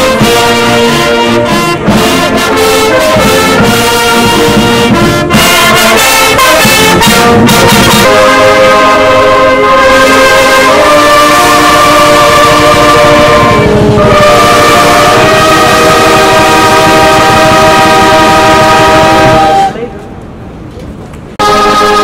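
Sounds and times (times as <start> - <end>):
brass band playing chords: 0.0 - 19.9, 21.4 - 22.0.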